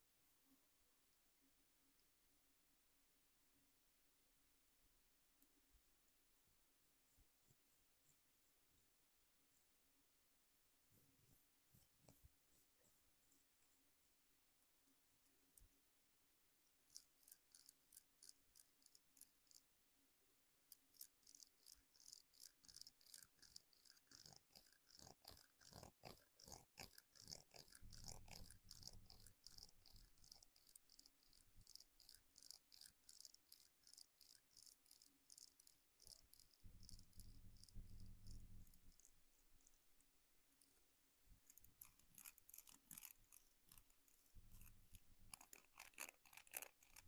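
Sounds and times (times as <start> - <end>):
comb scraping through hair: 41.5 - 47.0.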